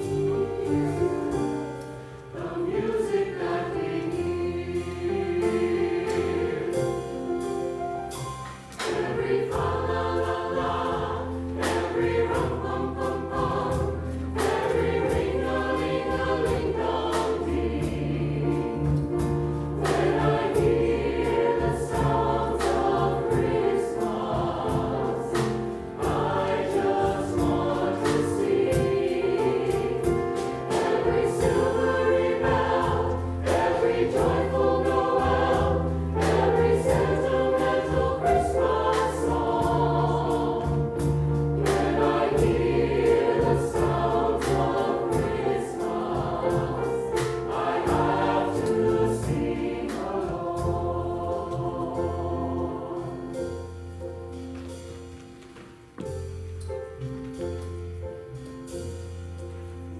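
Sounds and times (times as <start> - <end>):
mixed choir singing: 0.0 - 7.9, 8.5 - 53.8
drum beat: 26.0 - 46.8.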